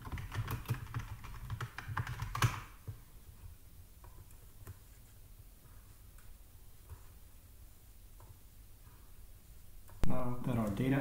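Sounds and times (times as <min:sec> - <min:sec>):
computer keyboard typing: 0:00.0 - 0:03.0.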